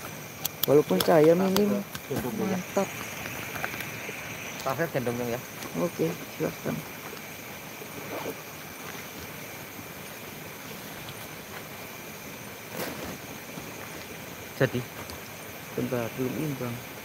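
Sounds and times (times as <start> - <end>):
background hiss: 0.0 - 17.0
faint insect drone: 0.0 - 17.0.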